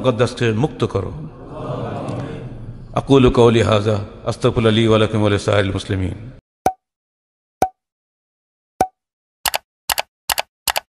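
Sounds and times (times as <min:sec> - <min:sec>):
double clicks: 0:09.5 - 0:10.9.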